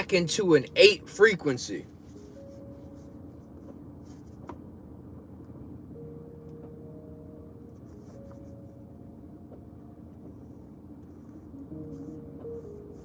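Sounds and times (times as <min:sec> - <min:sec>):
low rumble inside car: 0:00.0 - 0:13.0
pen scratching on paper: 0:11.2 - 0:13.0.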